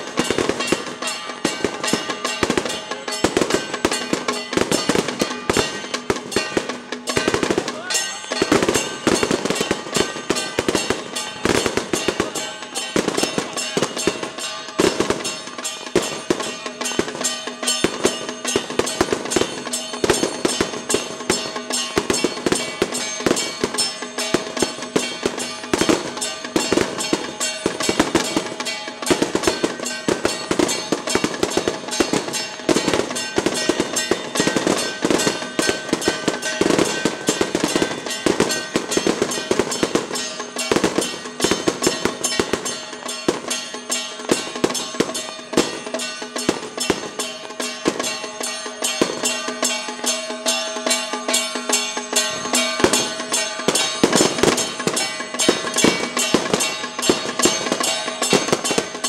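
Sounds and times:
firecrackers crackling: 0:00.0 - 0:59.0.

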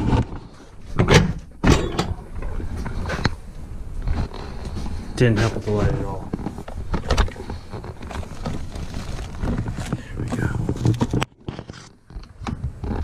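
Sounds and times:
rustling: 0:00.0 - 0:13.0
objects knocking and clicking: 0:05.8 - 0:13.0.

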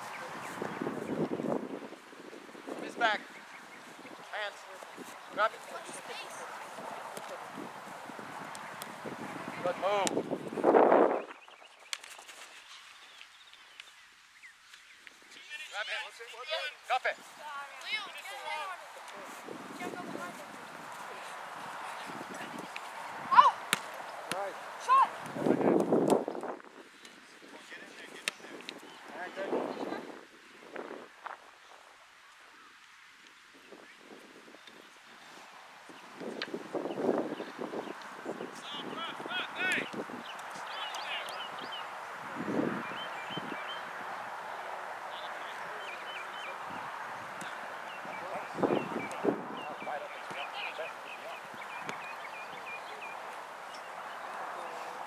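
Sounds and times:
players and spectators shouting: 0:24.8 - 0:25.2.

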